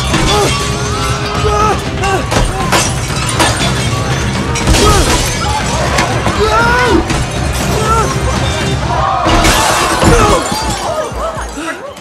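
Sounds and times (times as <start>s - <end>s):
glass breaking: 0.0s - 1.5s, 2.2s - 6.4s, 7.1s - 11.4s
music: 0.0s - 12.0s.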